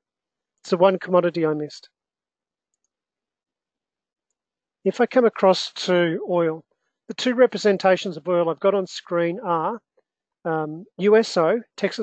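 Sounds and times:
faint clicks: 2.7 - 3.0.

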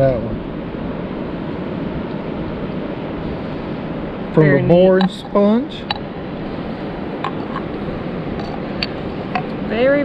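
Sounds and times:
steady background rush: 0.0 - 10.0.

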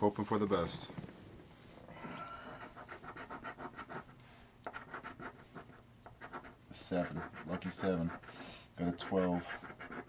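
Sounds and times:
coin scratching lottery ticket: 2.6 - 4.1, 4.7 - 8.3, 8.9 - 10.0.

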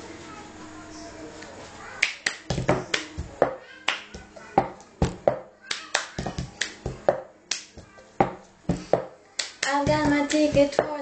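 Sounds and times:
hand claps: 2.0 - 3.2, 3.8 - 4.3, 5.6 - 7.7, 9.4 - 10.8
plastic cup knocked on table: 2.5 - 3.6
taps on tabletop: 2.5 - 3.6, 4.2 - 5.5, 6.1 - 9.2, 9.8 - 10.9.

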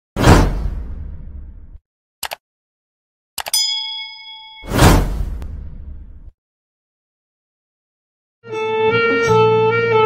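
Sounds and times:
bright bell ding: 3.5 - 5.0.

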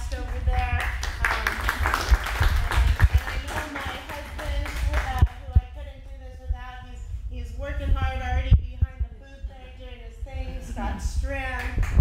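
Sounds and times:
low hum: 0.0 - 12.0
woman speaking: 0.0 - 12.0.

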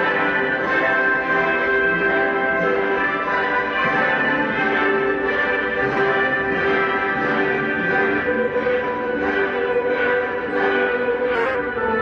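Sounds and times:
orchestra playing anthem with brass: 0.0 - 12.0.

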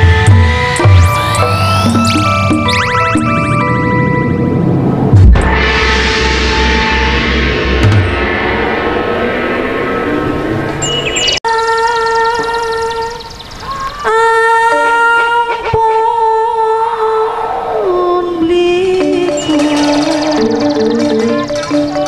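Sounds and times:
drumming and percussion: 19.3 - 22.0.

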